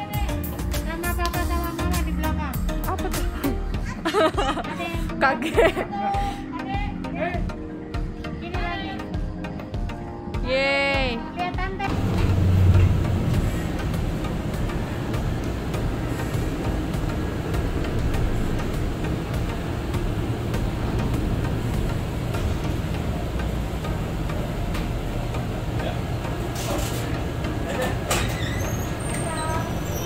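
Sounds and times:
vehicle engine hum and rumble: 11.8 - 30.0.

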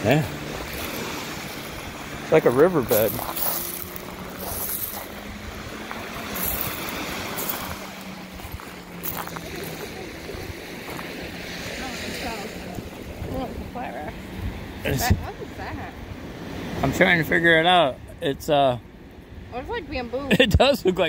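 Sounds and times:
wind on microphone: 0.0 - 16.3
small waves washing onto shore: 0.0 - 21.0
footsteps crunching on pebbles: 2.8 - 9.8.

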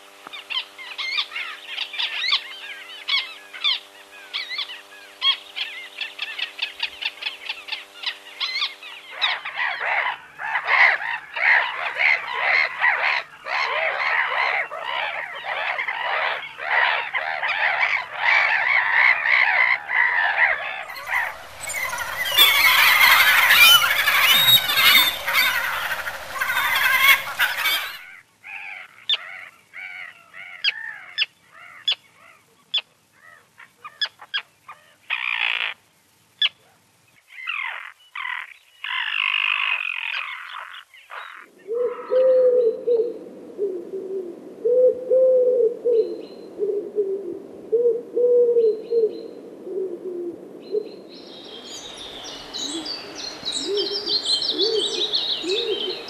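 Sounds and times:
terns giving sharp calls: 0.4 - 32.2, 51.2 - 56.0
gulls calling harshly: 17.8 - 28.1
wood pigeon cooing: 20.9 - 28.1, 41.6 - 51.0, 53.6 - 56.0.

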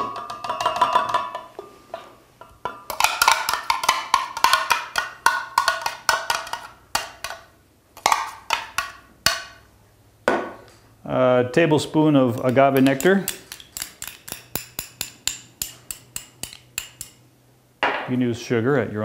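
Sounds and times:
spoon knocking and scraping container: 0.0 - 9.5, 12.4 - 17.2.

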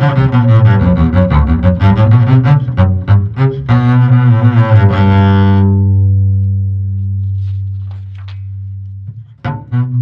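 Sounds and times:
double bass bowed note: 0.0 - 10.0.

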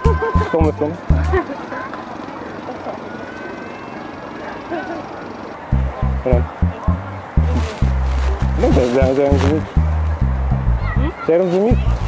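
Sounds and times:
bus running: 0.0 - 12.0
city street traffic: 0.0 - 12.0
faint voices talking: 0.0 - 12.0.

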